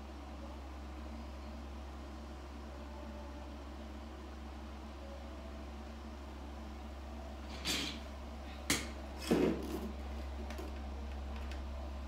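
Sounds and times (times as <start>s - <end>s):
cooling fans humming: 0.0s - 12.0s.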